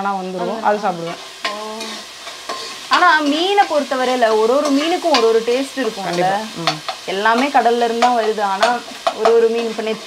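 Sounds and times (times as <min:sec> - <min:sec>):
woman speaking: 0:00.0 - 0:01.2, 0:05.8 - 0:10.0
curry sizzling in pot: 0:00.0 - 0:10.0.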